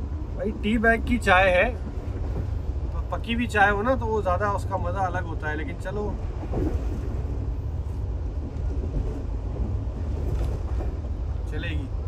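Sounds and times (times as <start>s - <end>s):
train wheels rumbling: 0.0s - 12.0s.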